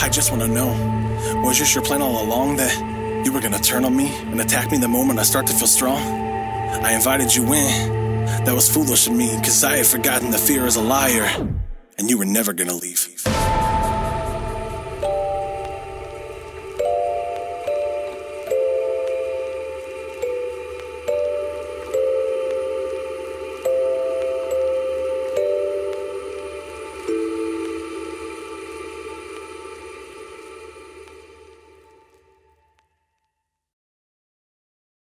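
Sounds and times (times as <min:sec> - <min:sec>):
music box tinkling melody: 0:15.0 - 0:28.6.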